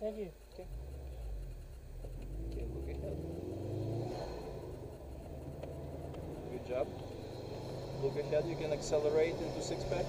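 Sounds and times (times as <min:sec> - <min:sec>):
car engine drone from cabin: 0:00.0 - 0:10.0
tyre and road noise: 0:00.6 - 0:10.0.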